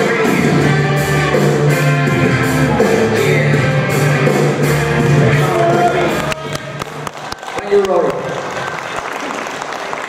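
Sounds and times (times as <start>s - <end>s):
rock music: 0.0s - 7.1s
audience hand claps: 5.3s - 10.0s.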